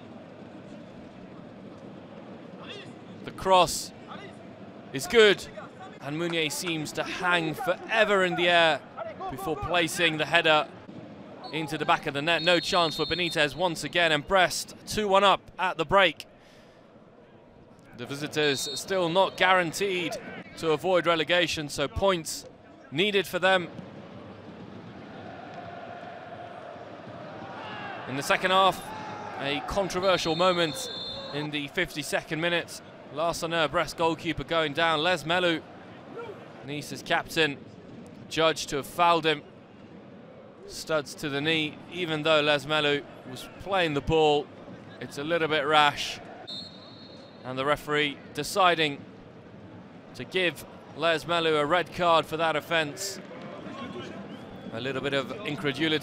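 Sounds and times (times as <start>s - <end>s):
empty stadium ambient hiss: 0.0s - 25.3s, 26.4s - 56.0s.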